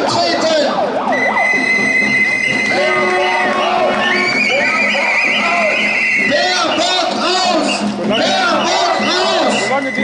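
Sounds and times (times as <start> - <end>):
crowd voices: 0.0 - 10.0
high whistle-like tones: 1.1 - 10.0.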